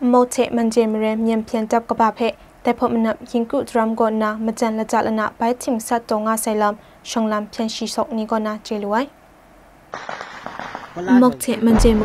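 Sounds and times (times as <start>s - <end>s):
distant gunfire: 9.9s - 12.0s.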